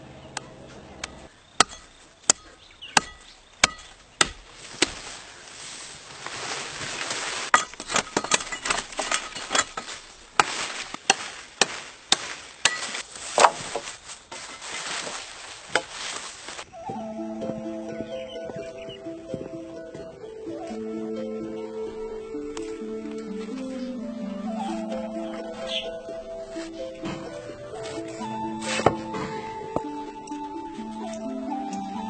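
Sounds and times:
blade chopping branches: 0.7 - 16.7, 26.6 - 30.4
rustling: 0.7 - 17.0, 21.9 - 31.2.

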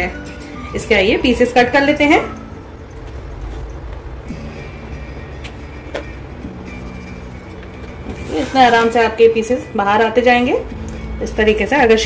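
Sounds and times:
low steady hum: 0.0 - 12.0
soft background music: 0.0 - 12.0.

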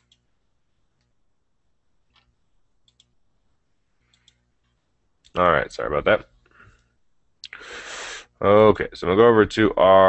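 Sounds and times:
faint computer clicks: 2.1 - 3.2, 4.0 - 5.4.

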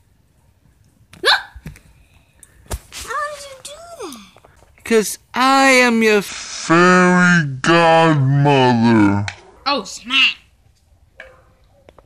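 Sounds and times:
child yelping: 1.2 - 1.6.

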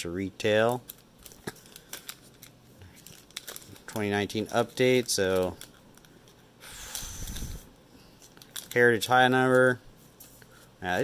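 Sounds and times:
foil wrappers crinkling: 0.4 - 11.0.

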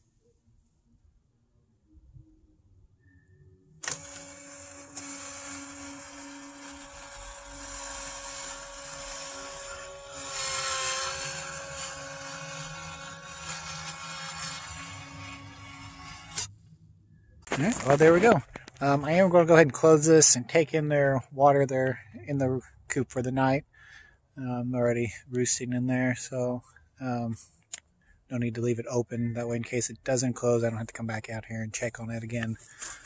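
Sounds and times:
electric motor whine: 3.7 - 16.6.

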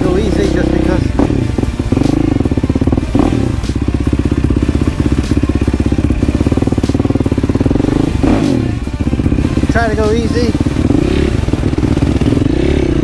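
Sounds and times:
quad engine running at low revs: 0.0 - 13.0.

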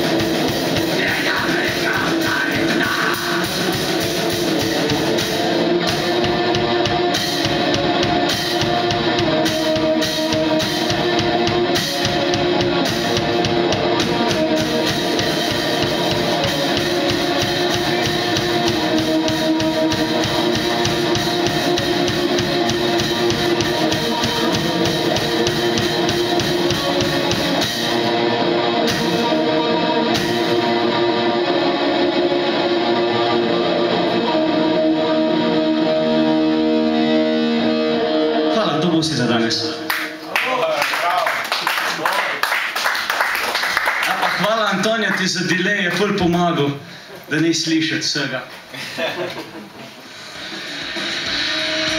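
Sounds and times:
fast drumming: 0.0 - 30.8, 50.2 - 51.9
electric guitar: 0.0 - 41.2, 48.5 - 51.9.

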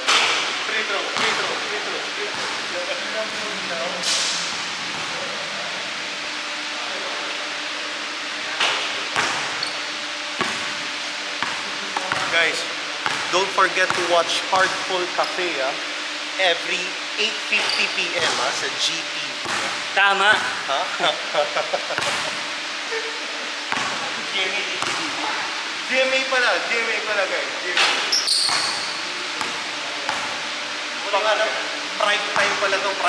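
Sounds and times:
basketball striking: 8.6 - 10.8, 13.0 - 13.3, 19.4 - 19.8, 23.7 - 24.0, 27.8 - 30.4
laughter and voices: 20.8 - 24.3.

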